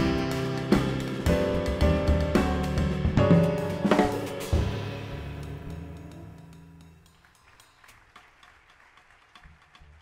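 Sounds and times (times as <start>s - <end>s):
jazz quintet playing softly: 0.0s - 2.8s.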